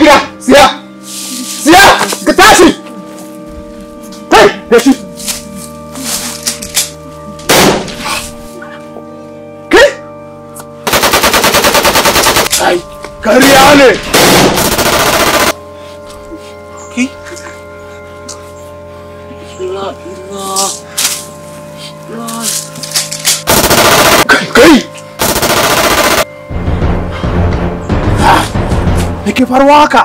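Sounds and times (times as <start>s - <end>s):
man shouting: 9.7s - 10.1s
automatic rifle fire: 10.9s - 12.5s, 14.2s - 15.6s, 23.5s - 24.4s, 25.2s - 26.2s.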